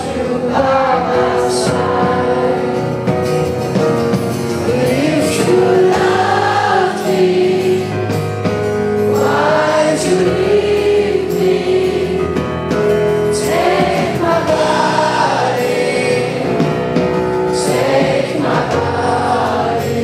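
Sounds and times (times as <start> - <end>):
voices singing together: 0.0 - 3.2, 4.5 - 20.0
acoustic guitar: 0.0 - 20.0
keyboards: 0.0 - 20.0.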